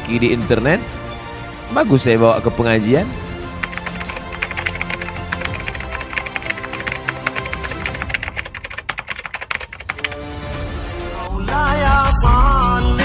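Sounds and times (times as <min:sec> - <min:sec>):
background music with sustained tones: 0:00.0 - 0:08.8
keyboard typing clicks: 0:03.6 - 0:10.2.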